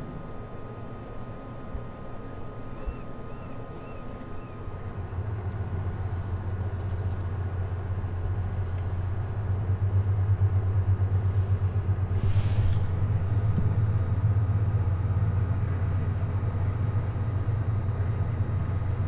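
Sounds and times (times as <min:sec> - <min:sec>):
low hum with rumble: 0:00.0 - 0:19.0
brief hiss: 0:12.2 - 0:13.0.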